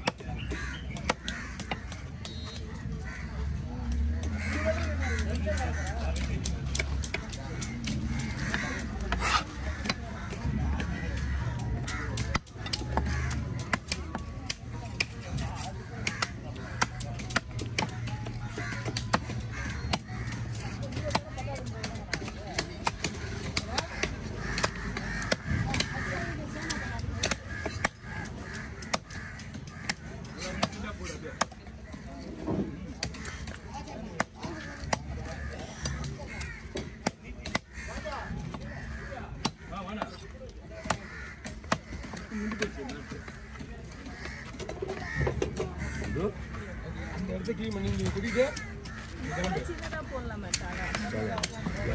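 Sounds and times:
crows cawing: 0:00.0 - 0:51.9
knife chopping fish on wood: 0:04.8 - 0:31.9, 0:32.9 - 0:44.0.

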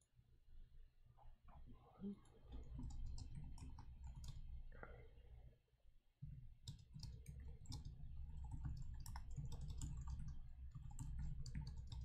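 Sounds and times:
faint keyboard typing: 0:02.2 - 0:04.7, 0:06.2 - 0:12.0.

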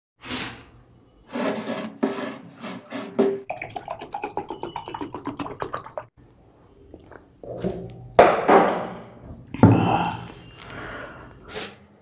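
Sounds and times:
juice poured into glass mug: 0:03.5 - 0:06.1
ringing glass tone: 0:04.0 - 0:05.2.

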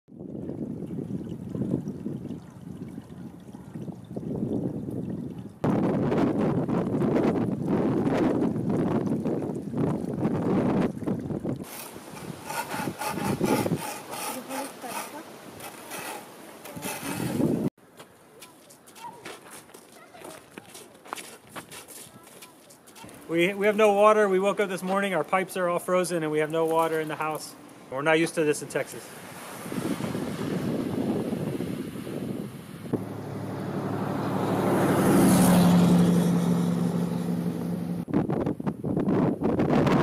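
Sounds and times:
ice scraper rasping on window: 0:11.6 - 0:17.7.

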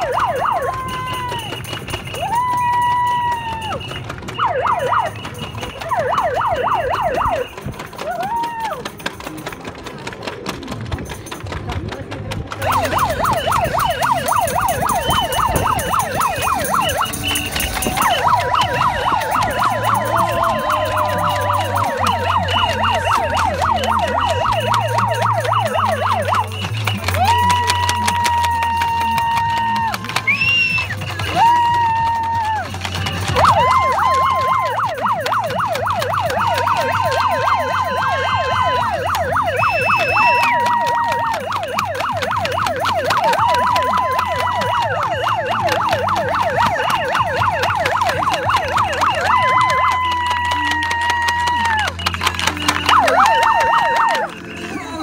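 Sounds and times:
megaphone siren warbling: 0:00.0 - 0:08.7, 0:12.6 - 0:55.0.

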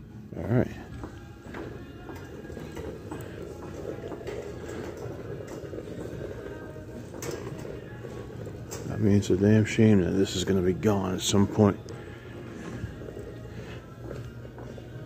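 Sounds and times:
faint background music: 0:00.0 - 0:15.0
shopping cart rolling and rattling: 0:00.4 - 0:15.0
shopping cart clattering: 0:01.4 - 0:15.0.

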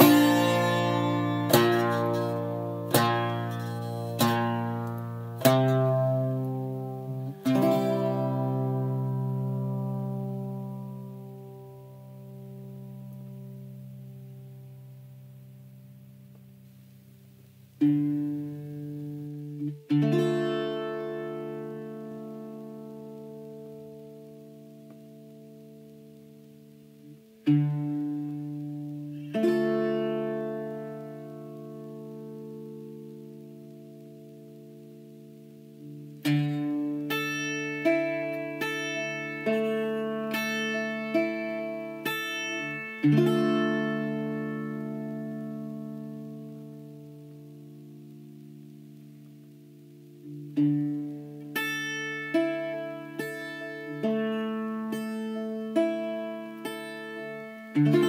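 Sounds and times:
bouzouki plucked notes: 0:00.0 - 0:58.0
bouzouki strummed chords: 0:00.0 - 0:58.0.

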